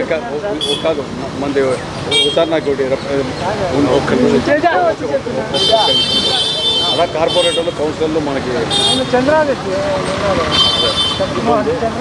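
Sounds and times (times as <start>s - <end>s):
men talking: 0.0s - 12.0s
vehicle horn: 5.5s - 7.8s, 8.7s - 9.2s, 10.5s - 11.3s.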